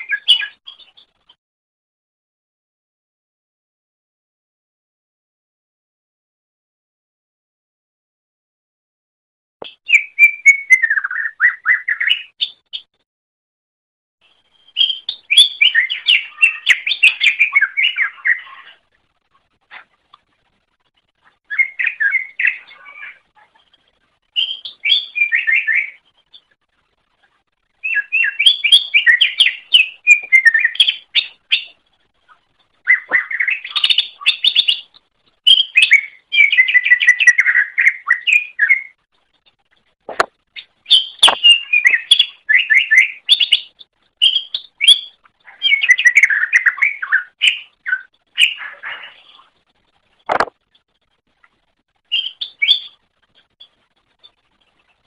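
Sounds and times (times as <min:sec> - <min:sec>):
bird chirping and warbling: 0:00.0 - 0:01.4, 0:09.7 - 0:12.9, 0:14.3 - 0:19.0, 0:21.2 - 0:27.0, 0:27.7 - 0:39.0, 0:40.2 - 0:49.6, 0:52.0 - 0:55.0.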